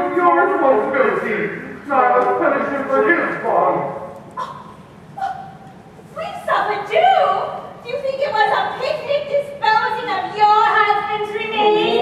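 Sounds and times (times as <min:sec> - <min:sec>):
actors speaking in a hall: 0:00.0 - 0:12.0.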